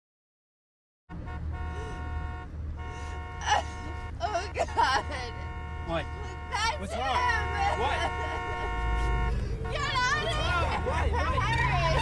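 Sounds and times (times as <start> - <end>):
car horn long tone: 1.1 - 10.9
woman's voice: 3.5 - 5.4, 9.7 - 12.0.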